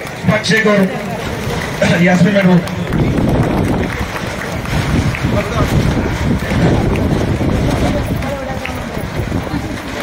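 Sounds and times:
low rumbling noise: 0.0 - 10.0
people talking indistinctly: 0.2 - 10.0.

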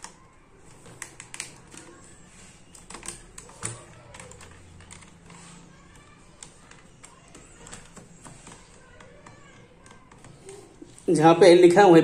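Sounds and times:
wire clicking into switch terminals: 0.0 - 2.0.

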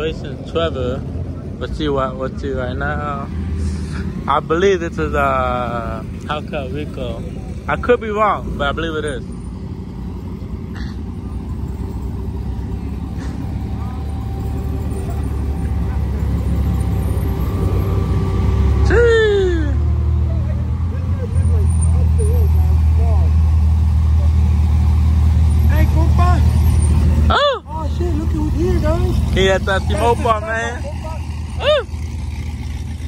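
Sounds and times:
car engine rumbling: 0.0 - 33.0
people's voices: 10.4 - 32.5.

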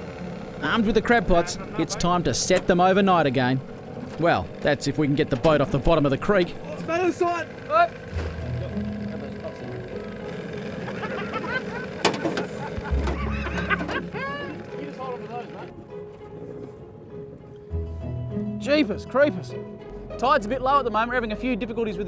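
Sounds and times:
background music: 8.0 - 22.0
men calling out: 10.6 - 15.7.

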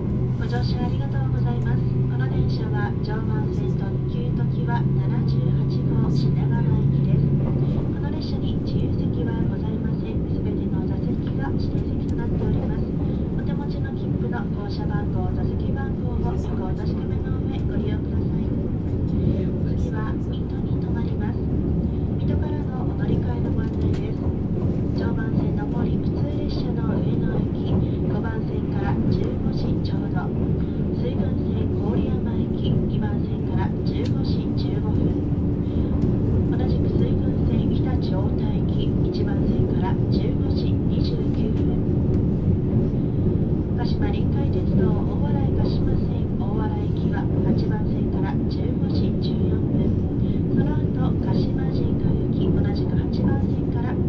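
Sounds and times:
train interior rumble and hum: 0.0 - 54.0.

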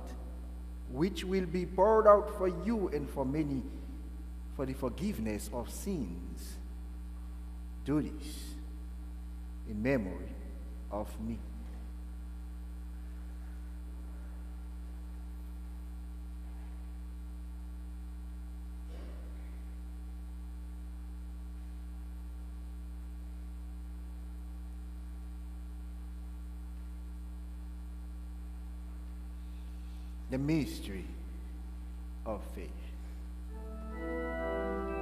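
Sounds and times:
electrical mains hum: 0.0 - 35.0.

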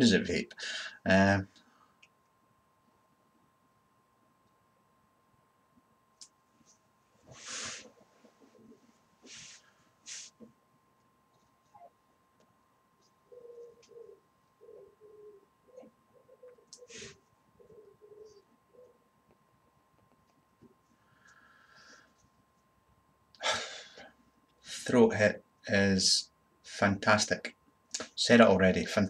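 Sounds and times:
faint breaths: 0.6 - 1.0, 20.9 - 22.3.

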